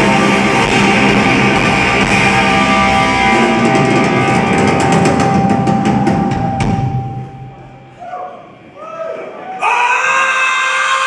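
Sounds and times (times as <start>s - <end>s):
drum and cymbal hits: 0.0s - 7.9s
held organ or guitar note: 0.0s - 8.0s
live rock band playing: 0.0s - 8.0s.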